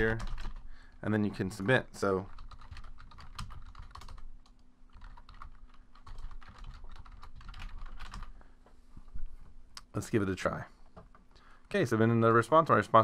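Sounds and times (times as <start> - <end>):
computer keyboard typing: 0.0 - 0.6, 2.0 - 8.3.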